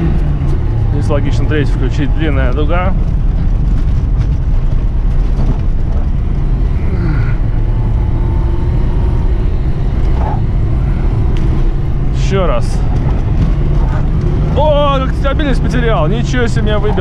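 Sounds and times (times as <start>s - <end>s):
car engine pulling hard: 0.0s - 17.0s
tyres rumbling on rough track: 0.0s - 17.0s.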